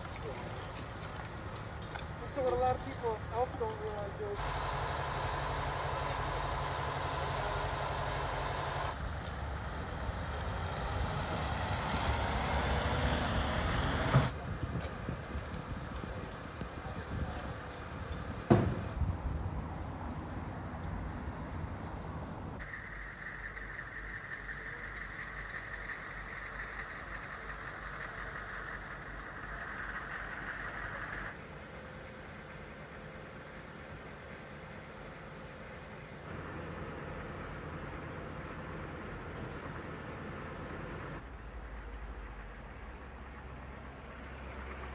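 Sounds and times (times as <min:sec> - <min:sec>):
street vehicle noise: 0:00.0 - 0:44.9.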